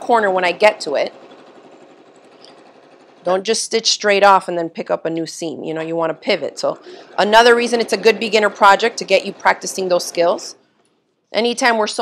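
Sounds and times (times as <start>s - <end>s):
sewing machine running: 0.0s - 10.6s.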